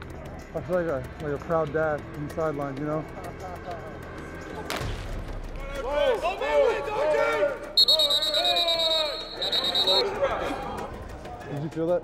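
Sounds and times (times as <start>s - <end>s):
men whooping and yelling: 5.8s - 10.9s
high trilling whistle: 7.8s - 10.1s.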